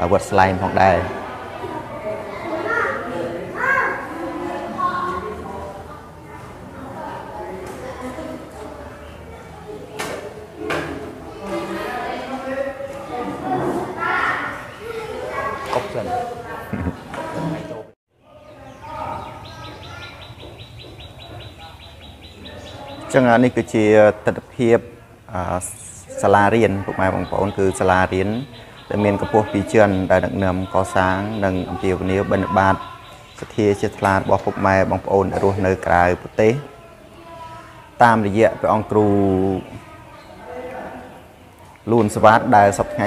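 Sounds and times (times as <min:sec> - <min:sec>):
children talking and calling: 0:00.0 - 0:43.0
bird chirping rapidly: 0:18.4 - 0:23.9, 0:25.7 - 0:35.6.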